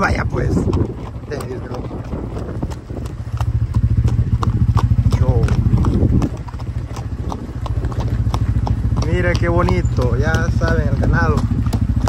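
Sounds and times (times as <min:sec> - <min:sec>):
hooves clopping on dirt road: 0:00.0 - 0:12.0
motorcycle engine pulsing: 0:00.0 - 0:12.0.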